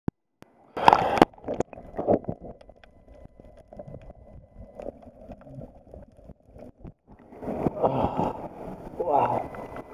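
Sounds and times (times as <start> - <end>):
underwater clicks and gurgles: 0.0 - 9.9
muffled underwater sound: 0.5 - 9.9.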